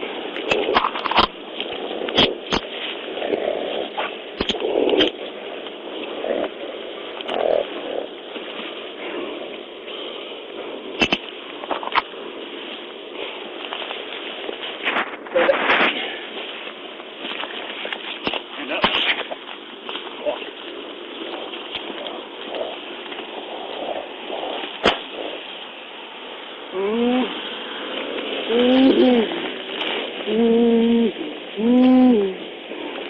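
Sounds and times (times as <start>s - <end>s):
steady hiss: 0.0s - 33.0s
muffled voices: 18.3s - 19.4s.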